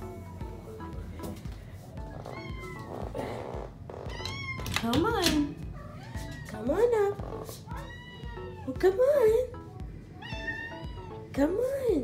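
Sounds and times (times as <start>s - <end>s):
cat meowing: 2.2s - 3.1s, 4.0s - 4.8s, 7.6s - 8.7s, 10.2s - 11.2s.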